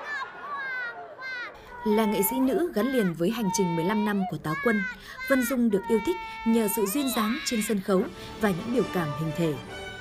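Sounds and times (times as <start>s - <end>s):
woman calling out shrilly: 1.8s - 7.8s.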